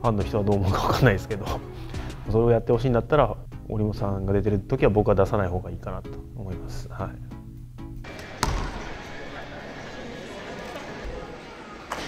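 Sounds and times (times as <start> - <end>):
soft background music: 0.0 - 11.2
basketball bounce on hardwood floor: 8.4 - 8.9.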